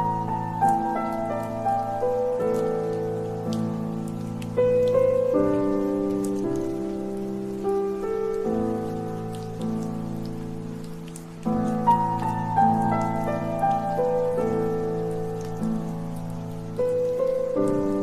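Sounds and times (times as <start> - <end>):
raindrop ticks: 0.0 - 18.0
slow solo piano: 0.0 - 18.0
steady rain: 0.0 - 18.0.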